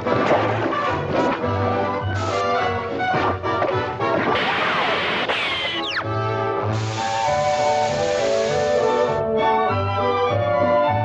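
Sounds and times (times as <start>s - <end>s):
orchestral cartoon music: 0.0s - 11.0s
noisy crash sound effect: 4.3s - 5.8s.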